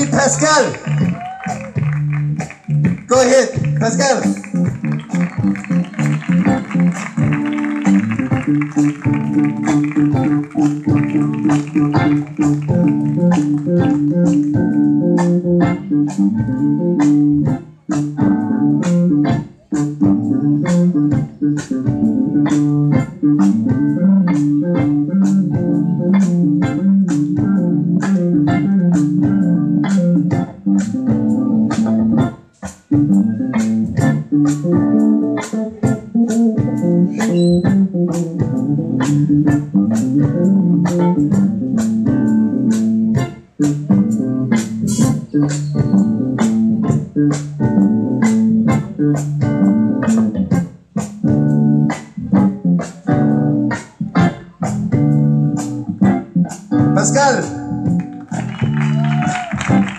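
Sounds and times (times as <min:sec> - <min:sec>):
rock band playing instrumental: 0:00.0 - 0:59.9.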